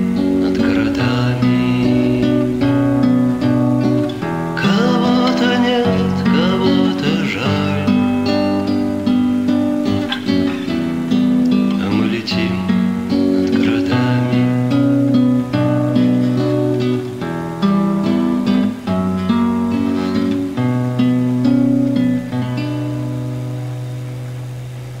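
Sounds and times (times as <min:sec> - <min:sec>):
acoustic guitar music: 0:00.0 - 0:25.0.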